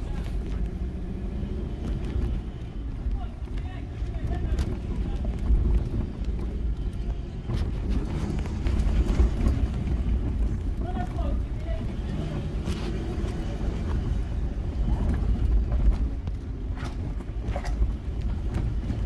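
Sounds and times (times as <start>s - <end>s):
engine and tyres rumbling: 0.0s - 19.0s.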